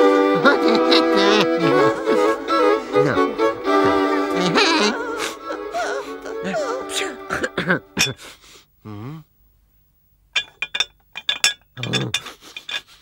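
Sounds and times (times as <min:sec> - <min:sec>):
cartoon character coughing: 0:06.5 - 0:08.2.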